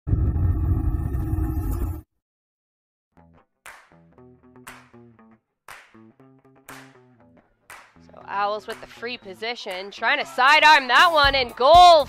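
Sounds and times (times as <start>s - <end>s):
deep rumbling intro sting: 0.1s - 2.0s.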